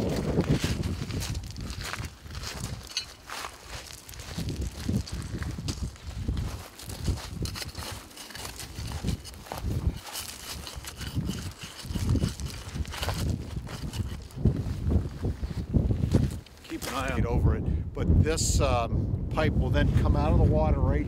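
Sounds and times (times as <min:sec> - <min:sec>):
footsteps on pebbles and shells: 0:00.0 - 0:17.2
wind rumbling on microphone: 0:00.0 - 0:21.0.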